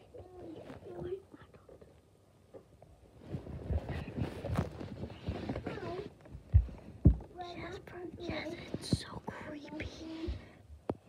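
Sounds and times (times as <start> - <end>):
soft hushed voice: 0.0 - 2.1, 3.3 - 6.2, 7.4 - 10.7
faint rustles: 0.0 - 10.7.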